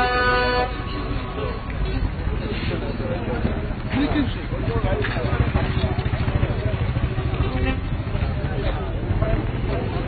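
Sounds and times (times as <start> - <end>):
crowd voices talking: 0.0 - 10.0
motorcycle engine running: 4.6 - 10.0.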